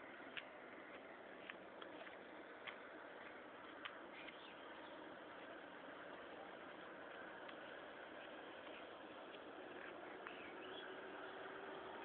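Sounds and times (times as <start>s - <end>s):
faint outdoor ambience hiss: 0.0s - 12.0s
faint high chirps: 4.1s - 5.1s.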